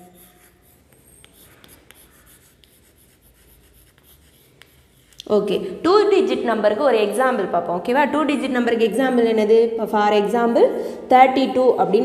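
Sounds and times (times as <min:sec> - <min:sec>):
chalk scratching on chalkboard: 0:00.0 - 0:05.3
chalk tapping: 0:00.0 - 0:05.3.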